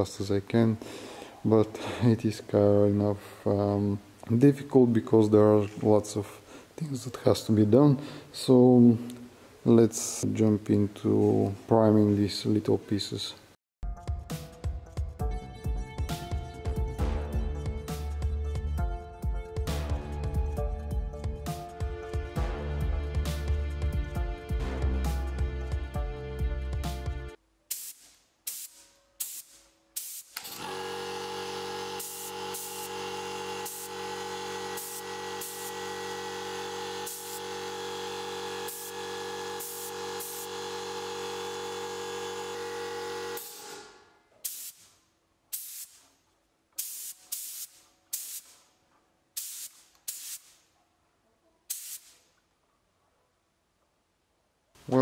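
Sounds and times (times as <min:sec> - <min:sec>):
spray gun hissing bursts: 0:27.7 - 0:46.0, 0:46.8 - 0:48.6, 0:49.4 - 0:50.6, 0:51.7 - 0:52.2
piston air compressor running: 0:29.2 - 0:44.1.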